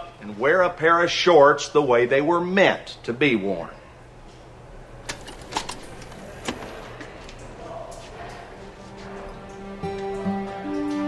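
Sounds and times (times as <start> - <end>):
low steady background noise: 0.0 - 11.0.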